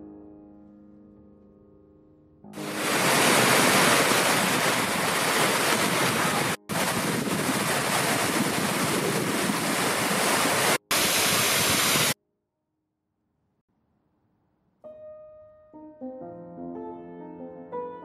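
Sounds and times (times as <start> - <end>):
waterfalls pouring over rock: 2.6 - 12.2.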